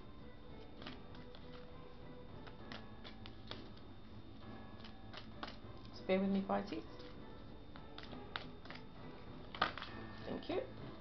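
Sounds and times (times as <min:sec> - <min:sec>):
cards clicking and rustling: 0:00.6 - 0:01.7, 0:02.4 - 0:03.8, 0:04.8 - 0:05.6, 0:07.8 - 0:08.9, 0:09.5 - 0:10.2.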